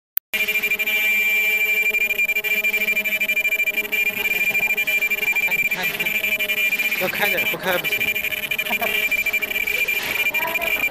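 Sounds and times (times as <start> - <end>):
welding machine high-pitched whine: 0.3 - 10.9.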